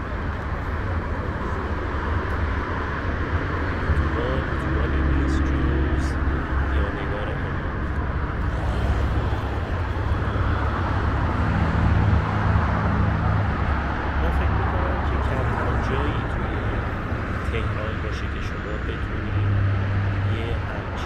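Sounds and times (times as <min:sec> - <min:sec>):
highway traffic rumble: 0:00.0 - 0:21.0.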